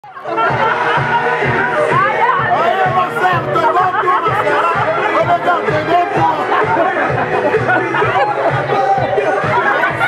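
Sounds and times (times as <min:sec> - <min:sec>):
dance music with steady beat: 0:00.0 - 0:10.0
voices chattering: 0:00.0 - 0:10.0.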